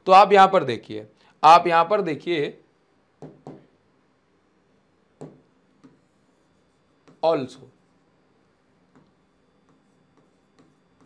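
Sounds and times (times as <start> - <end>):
stylus knock on touchscreen: 3.2 - 3.7.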